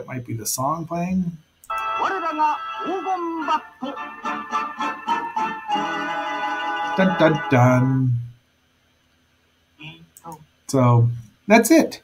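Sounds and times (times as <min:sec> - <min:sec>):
person singing: 0:01.7 - 0:07.9
band playing accented chords: 0:01.7 - 0:08.0.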